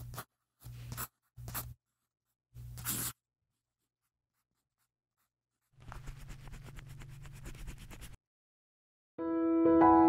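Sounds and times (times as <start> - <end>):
pen scratching on paper: 0.0 - 2.0, 2.6 - 8.2
music: 9.2 - 10.0.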